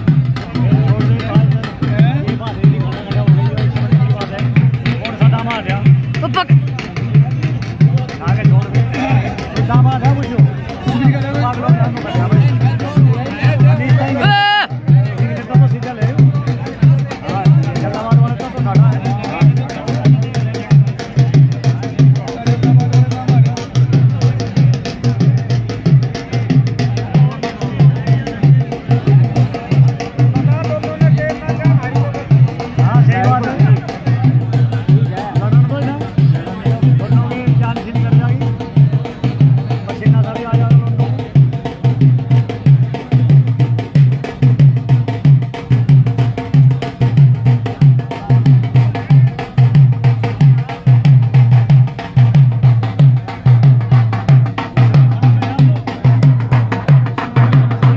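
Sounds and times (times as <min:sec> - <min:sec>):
dhol drum beating: 0:00.0 - 0:57.9
faint onlookers' voices: 0:00.0 - 0:57.9.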